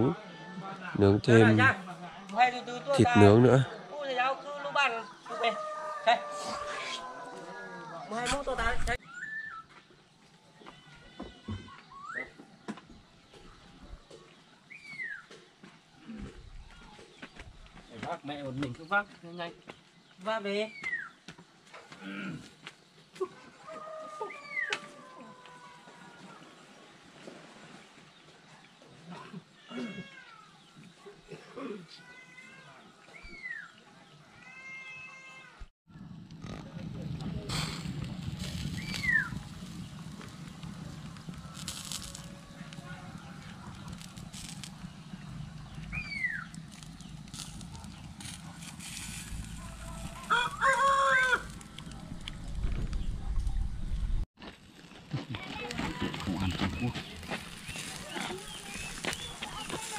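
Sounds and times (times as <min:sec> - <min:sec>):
roosters crowing: 0:04.8 - 0:09.0, 0:23.3 - 0:26.5, 0:37.5 - 0:52.8, 0:55.4 - 0:59.9
chickens calling: 0:05.0 - 0:09.1, 0:37.5 - 0:53.6, 0:55.2 - 0:59.9
low steady rumble: 0:35.9 - 0:54.2.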